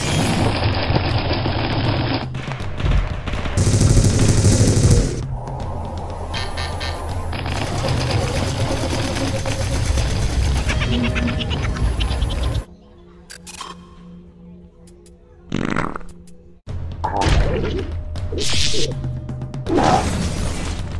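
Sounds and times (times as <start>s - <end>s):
background music: 0.0s - 20.9s
rapid gunfire: 2.0s - 5.2s, 7.4s - 11.2s.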